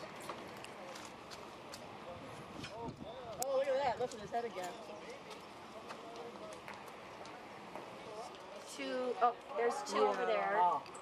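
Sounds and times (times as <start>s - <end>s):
steady outdoor hiss: 0.0s - 11.0s
people talking: 0.8s - 10.9s.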